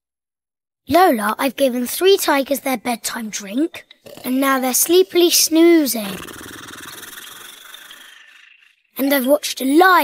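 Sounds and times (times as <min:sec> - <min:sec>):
cartoon tigers snoring: 0:03.8 - 0:09.7.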